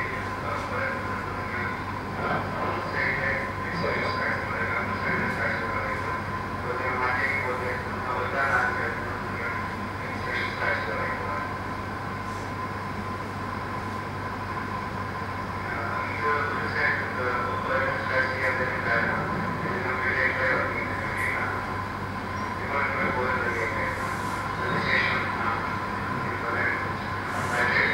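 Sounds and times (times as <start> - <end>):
room hum and hiss: 0.0 - 27.9
low voices murmuring: 15.6 - 27.9.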